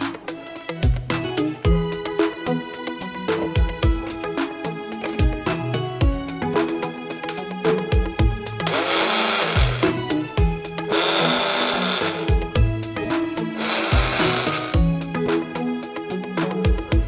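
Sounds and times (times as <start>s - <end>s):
background music with beat: 0.0s - 17.0s
blender running: 8.6s - 10.0s, 10.9s - 12.4s, 13.6s - 14.8s.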